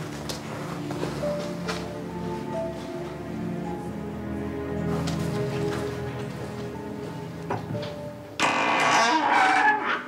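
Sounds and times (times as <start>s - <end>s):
door hinges creaking: 8.4s - 10.0s.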